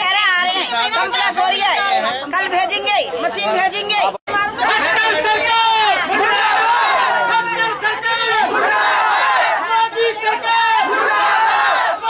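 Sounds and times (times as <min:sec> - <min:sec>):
crowd shouting a slogan: 0:00.6 - 0:02.5, 0:03.4 - 0:12.0.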